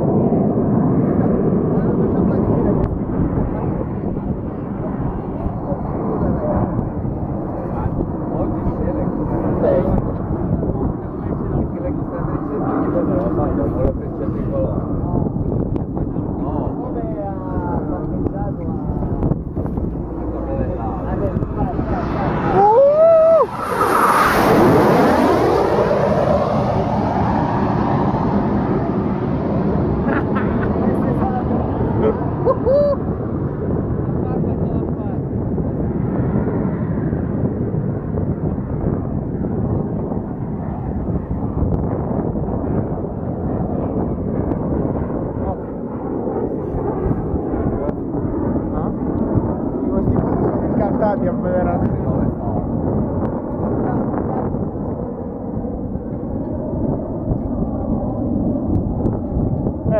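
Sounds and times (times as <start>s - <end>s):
jets roaring overhead: 0.0s - 59.9s.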